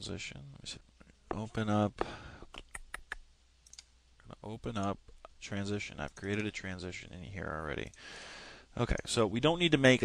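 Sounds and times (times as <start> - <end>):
computer mouse clicking: 2.5 - 3.9.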